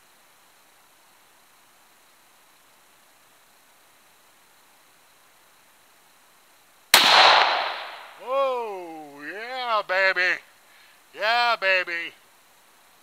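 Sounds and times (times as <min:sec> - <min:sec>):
faint steady hiss: 0:00.0 - 0:13.0
rifle shot: 0:06.9 - 0:08.2.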